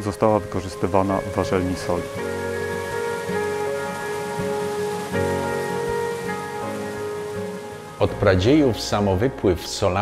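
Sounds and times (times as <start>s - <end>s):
running splashing water: 0.0s - 9.8s
music with sustained chords: 0.0s - 10.0s.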